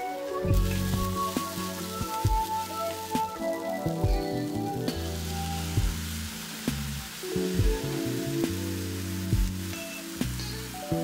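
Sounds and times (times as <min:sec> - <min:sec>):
background music with steady beat: 0:00.0 - 0:11.0
rice sizzling in a pan: 0:00.0 - 0:11.0.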